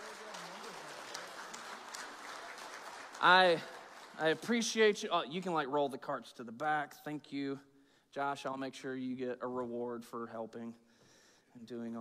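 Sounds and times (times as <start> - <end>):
audience applauding: 0.0 - 5.1.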